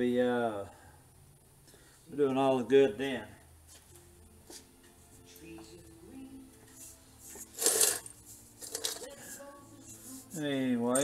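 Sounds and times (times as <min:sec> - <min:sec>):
screws rattling in steel bowl: 0:07.5 - 0:09.2.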